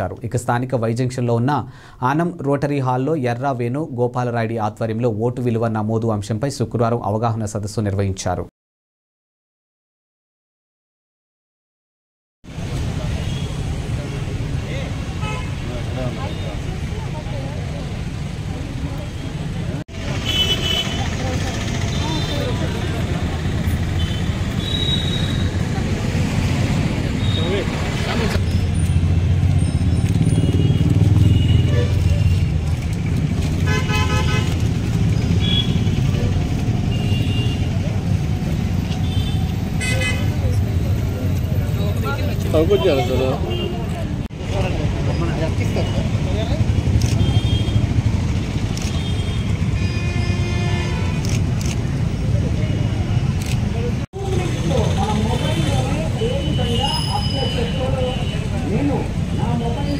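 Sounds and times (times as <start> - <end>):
road traffic rumble: 12.4 - 59.9
vehicle horns honking: 15.2 - 15.7, 20.2 - 21.2, 24.0 - 25.6, 27.2 - 27.8, 30.2 - 32.5, 33.6 - 34.6, 35.4 - 36.1, 36.9 - 37.8, 38.9 - 40.5, 42.5 - 44.0, 47.1 - 48.0, 48.9 - 51.3, 55.2 - 58.7.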